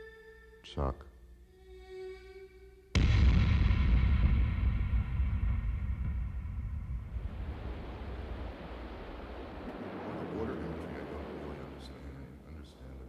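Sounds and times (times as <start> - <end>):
ocean surf washing on beach: 7.3 - 12.5.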